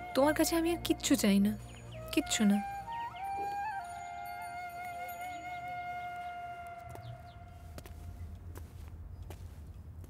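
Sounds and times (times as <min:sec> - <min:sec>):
held flute note: 0:00.0 - 0:08.1.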